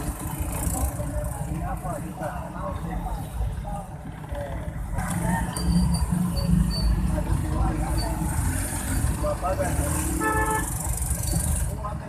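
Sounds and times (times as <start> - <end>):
traffic engine rumble: 0.0 - 12.0.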